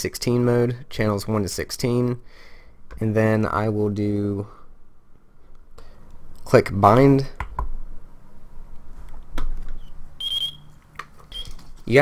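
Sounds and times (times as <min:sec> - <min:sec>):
radio transmitter beeping: 0:10.2 - 0:10.7.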